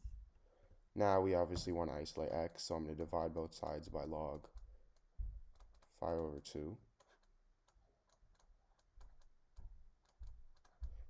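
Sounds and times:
soft low thumps: 0:03.8 - 0:04.2, 0:05.2 - 0:05.5
stylus clicking on a tablet: 0:03.9 - 0:11.0.

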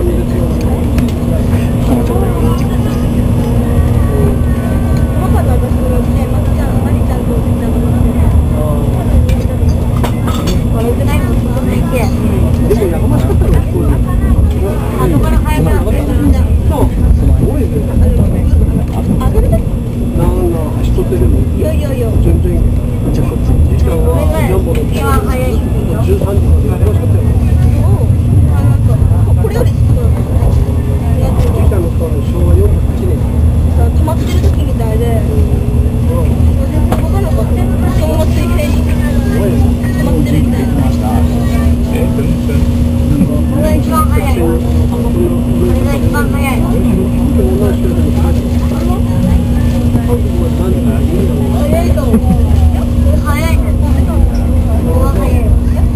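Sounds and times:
indistinct voices talking: 0:00.0 - 0:55.9
steady hum: 0:00.0 - 0:55.9
train cabin low rumble: 0:00.0 - 0:55.9.

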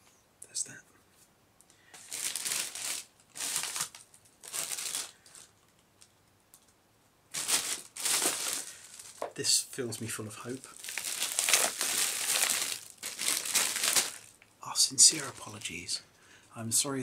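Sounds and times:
plastic bag crinkling: 0:02.0 - 0:06.1, 0:07.3 - 0:09.3, 0:10.0 - 0:16.0.

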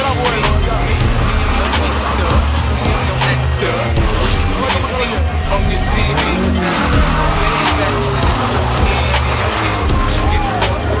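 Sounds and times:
car engine: 0:00.0 - 0:11.0
music with steady beat: 0:00.0 - 0:11.0
tyres squealing on asphalt: 0:00.0 - 0:11.0.

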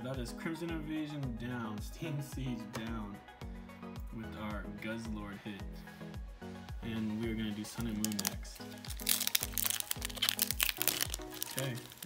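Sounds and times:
background music with low beat: 0:00.0 - 0:12.0
foil wrapper crinkling: 0:07.8 - 0:12.0.

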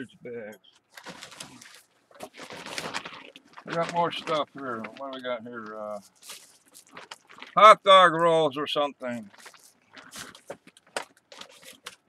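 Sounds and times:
plastic packaging rustling: 0:00.6 - 0:08.1, 0:09.1 - 0:12.0.

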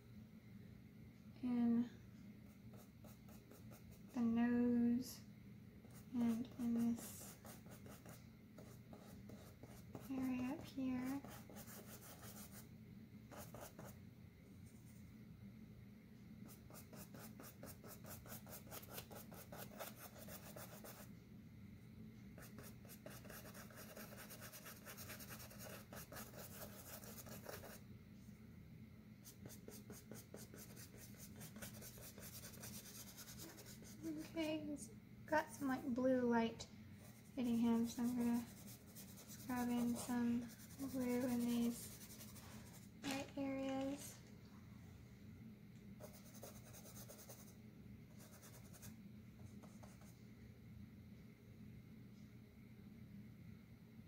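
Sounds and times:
paintbrush scrubbing on canvas: 0:37.2 - 0:42.8.

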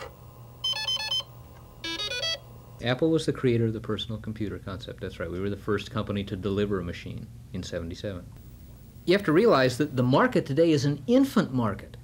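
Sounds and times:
low steady hum: 0:00.0 - 0:12.0
electronic computer bleeps: 0:00.6 - 0:02.4.

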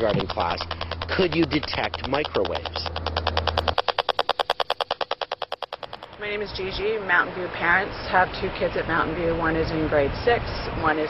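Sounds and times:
rapid electronic ticks: 0:00.0 - 0:07.1
low hum: 0:00.0 - 0:10.8.

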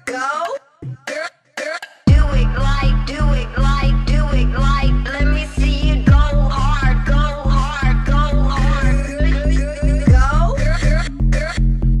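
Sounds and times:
chopped vocal snippets: 0:00.0 - 0:11.8.

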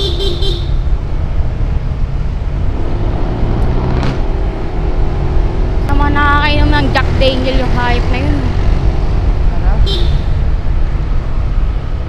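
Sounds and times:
motorcycle engine rumble: 0:00.0 - 0:12.0
road noise: 0:00.0 - 0:12.0
wind buffeting microphone: 0:00.8 - 0:12.0.

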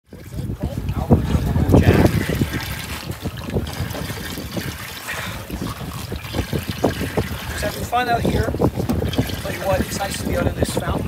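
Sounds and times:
water sounds: 0:00.0 - 0:11.0
wind: 0:00.0 - 0:11.0.

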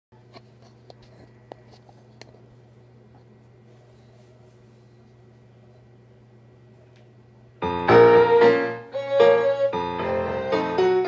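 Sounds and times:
steady low hum: 0:00.2 - 0:11.0.

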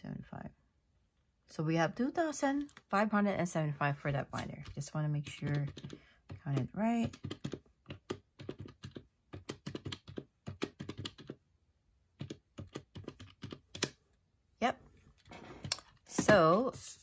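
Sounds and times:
pen tapping calculator keys: 0:04.4 - 0:11.4, 0:12.2 - 0:14.0.

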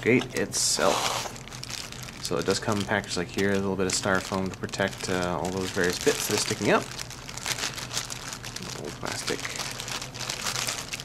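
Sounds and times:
plastic bag crinkling: 0:00.0 - 0:11.0.

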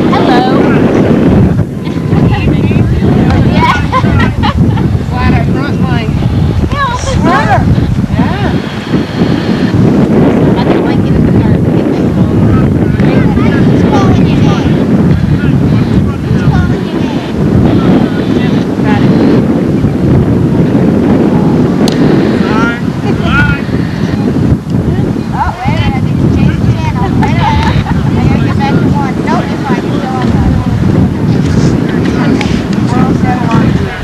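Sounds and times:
distant voices calling: 0:00.0 - 0:34.0
wind rumble on microphone: 0:00.0 - 0:34.0.

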